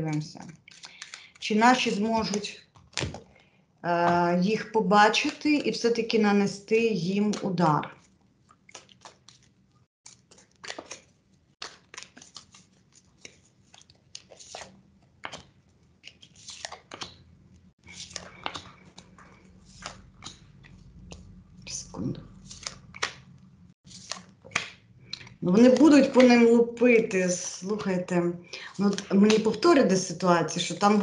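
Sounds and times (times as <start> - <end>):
cards being shuffled: 0.1 - 3.3, 5.1 - 5.6, 7.1 - 17.2, 17.8 - 23.3, 23.9 - 26.4, 28.8 - 29.6.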